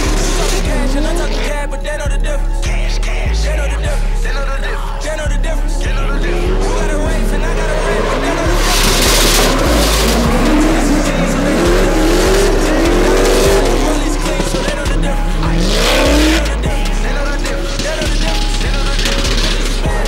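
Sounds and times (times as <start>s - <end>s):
car engine revving hard: 0.0s - 1.8s, 5.5s - 20.0s
rap music with heavy bass: 0.0s - 20.0s
tyres squealing: 4.9s - 20.0s.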